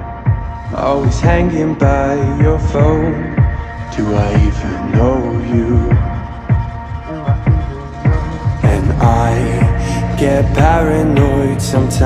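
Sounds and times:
deep bass drum thumps: 0.0s - 12.0s
sustained synth chords: 0.0s - 12.0s.

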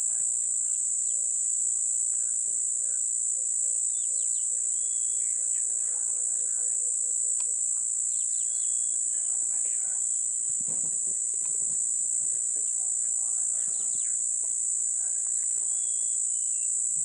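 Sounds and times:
faint low hum: 0.0s - 17.0s
insects droning: 0.0s - 17.0s
bird chirps: 2.1s - 9.4s, 13.5s - 14.3s, 15.3s - 16.8s.

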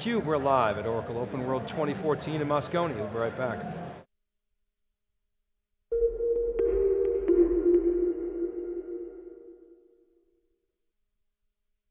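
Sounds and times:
low synth tones: 5.9s - 10.1s.

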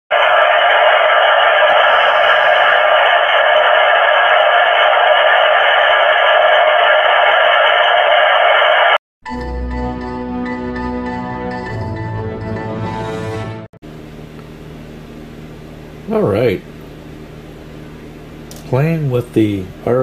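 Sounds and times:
faint steady radio tones: 0.1s - 9.0s
radio band hiss: 0.1s - 9.0s
intro music: 9.3s - 13.7s.

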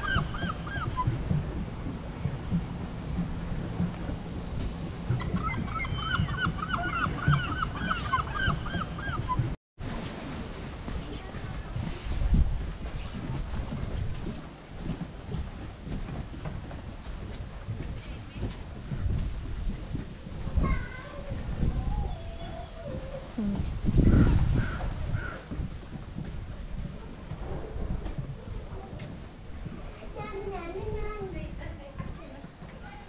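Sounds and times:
footfalls on wooden boardwalk: 0.0s - 33.0s
water lapping: 0.0s - 33.0s
wind: 0.0s - 33.0s
bird honking calls: 5.2s - 9.4s.

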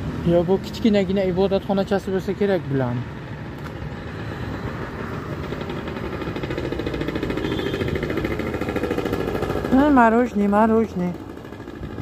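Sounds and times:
road traffic: 0.0s - 12.0s
vehicle engine running close by: 0.0s - 12.0s.

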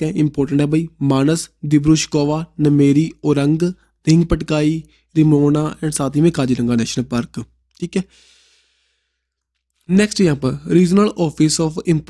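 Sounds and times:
man speaking: 0.0s - 8.2s, 9.8s - 12.0s
man exhaling breath: 8.1s - 9.2s.

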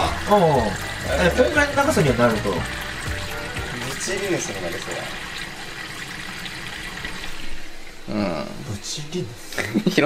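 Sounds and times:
water running into rubber balloon: 0.0s - 7.8s.

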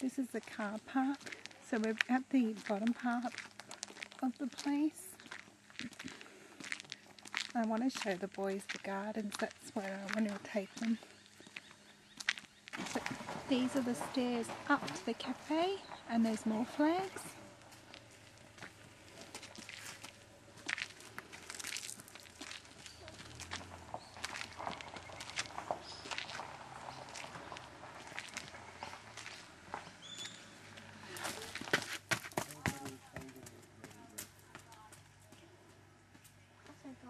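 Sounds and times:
footsteps climbing outdoor steps: 0.0s - 37.0s.

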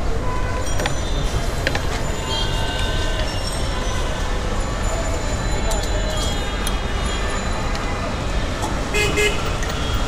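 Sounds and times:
rumbling street noise: 0.0s - 10.0s.

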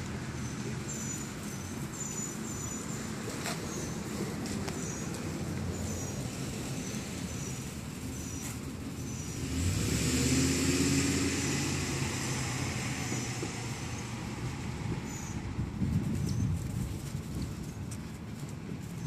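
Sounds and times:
motor vehicle passing: 3.1s - 17.7s.

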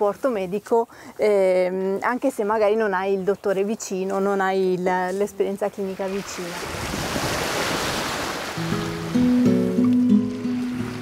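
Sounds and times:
water rushing along boat hull: 6.0s - 11.0s.

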